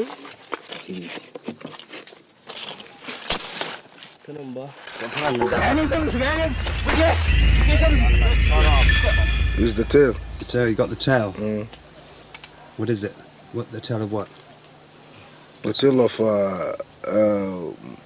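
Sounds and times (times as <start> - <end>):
light scraping and rustling: 0.0 - 6.0
low music drone: 5.5 - 11.8.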